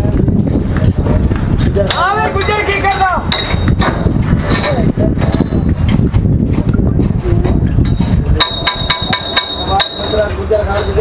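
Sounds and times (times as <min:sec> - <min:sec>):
low rumbling noise: 0:00.0 - 0:11.0
hammer striking metal: 0:01.9 - 0:04.7, 0:07.8 - 0:11.0.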